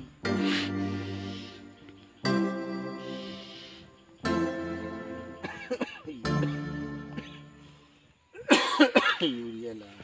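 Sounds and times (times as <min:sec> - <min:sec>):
person coughing: 0:05.4 - 0:07.5, 0:08.4 - 0:09.4.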